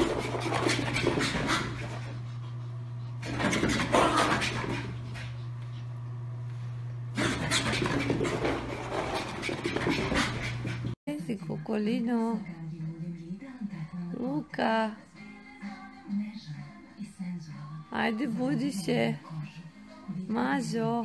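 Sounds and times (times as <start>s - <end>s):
small dogs panting: 0.0s - 6.0s, 7.2s - 11.0s
steady low hum: 0.0s - 11.0s.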